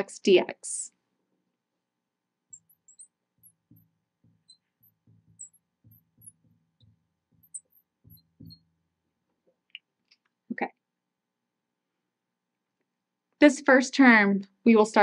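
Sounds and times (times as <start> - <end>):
marker writing on glass: 2.4 - 8.9.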